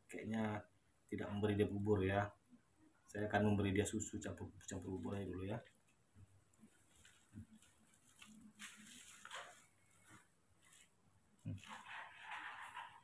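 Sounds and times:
cloth and bottle rustling: 0:04.6 - 0:13.0.

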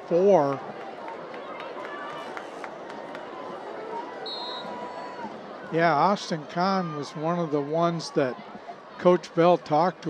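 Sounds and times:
stadium crowd chattering: 0:00.0 - 0:10.0.

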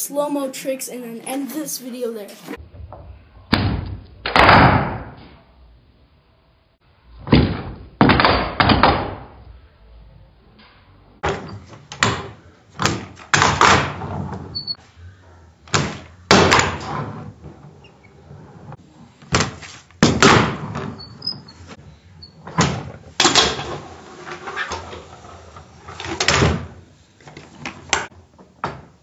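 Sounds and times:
wheels rolling on wood: 0:23.1 - 0:26.4.

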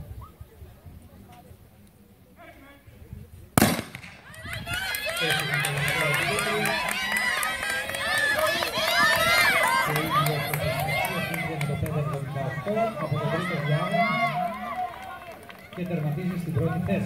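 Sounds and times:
starter's pistol crack: 0:03.6 - 0:04.2
spectators shouting and cheering: 0:04.2 - 0:17.0.

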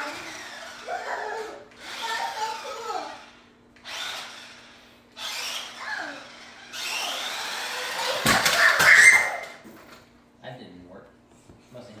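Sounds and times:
toy truck electric motor whirring: 0:00.0 - 0:09.6.

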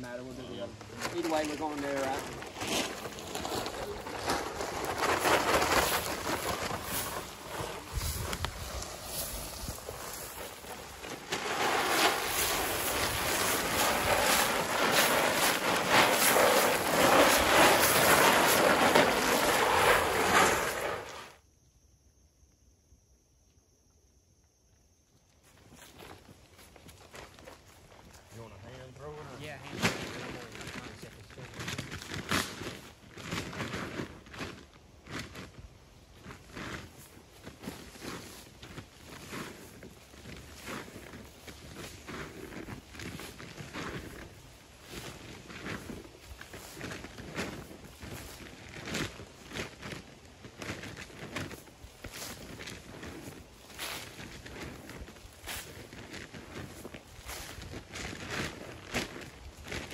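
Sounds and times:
rustling in dry leaves: 0:00.0 - 0:21.4, 0:25.5 - 0:59.9
footsteps in dry leaves: 0:00.6 - 0:21.3, 0:25.5 - 0:59.9
corn pouring into wooden trough: 0:01.0 - 0:21.3.

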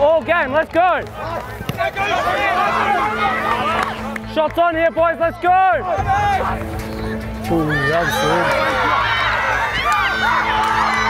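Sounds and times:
voices shouting: 0:01.2 - 0:04.1, 0:04.9 - 0:11.0.

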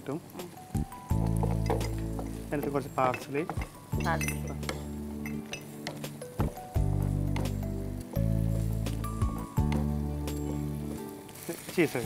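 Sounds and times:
background music of held low notes: 0:00.0 - 0:12.0
utensil clinking on frying pan: 0:01.2 - 0:06.4.

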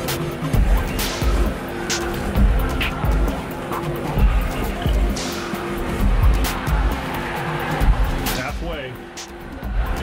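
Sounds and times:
electronic music with heavy bass beat: 0:00.0 - 0:10.0.

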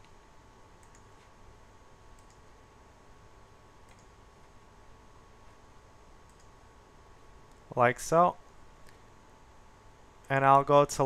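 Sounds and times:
faint hum and hiss: 0:00.0 - 0:11.0
computer mouse clicks: 0:00.8 - 0:01.3, 0:02.1 - 0:02.5, 0:03.8 - 0:04.2, 0:06.2 - 0:06.6.

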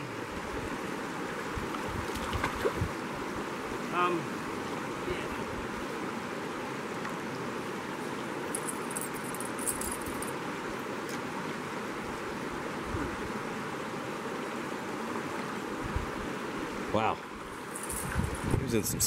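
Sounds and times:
creek water running over rocks: 0:00.0 - 0:19.0.

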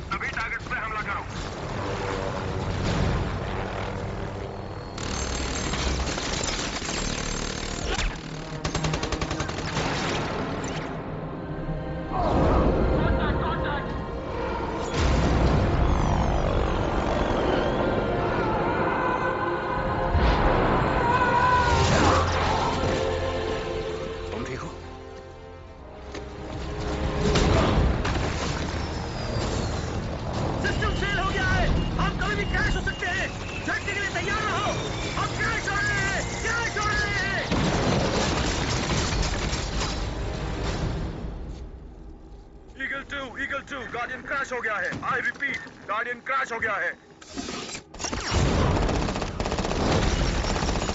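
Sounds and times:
helicopter rotor and engine: 0:00.1 - 0:09.8, 0:14.4 - 0:18.5, 0:28.8 - 0:38.2
falling whistles: 0:15.9 - 0:18.4, 0:28.6 - 0:30.0, 0:30.6 - 0:36.7.

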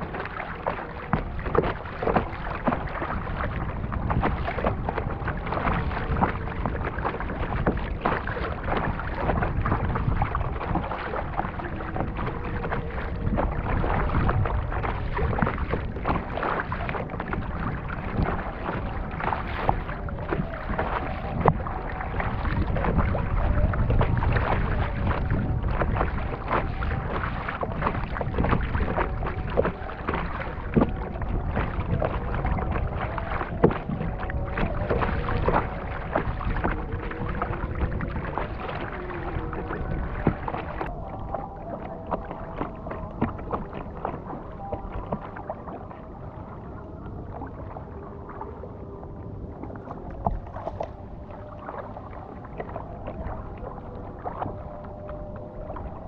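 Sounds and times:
paddle splashes: 0:00.0 - 0:56.0
water lapping against kayak: 0:00.0 - 0:56.0.

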